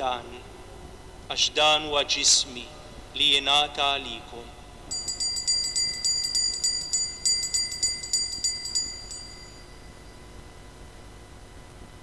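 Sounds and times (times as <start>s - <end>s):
jingling altar bells: 4.9s - 10.4s.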